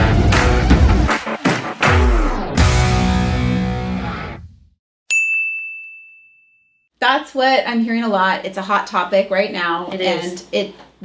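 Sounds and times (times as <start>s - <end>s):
intro music: 0.0s - 4.5s
high-pitched bell ding: 5.1s - 6.9s.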